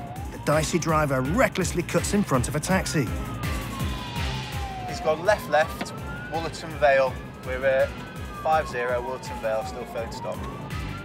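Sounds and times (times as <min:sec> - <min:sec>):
background music: 0:00.0 - 0:11.0
police siren wailing: 0:00.0 - 0:11.0.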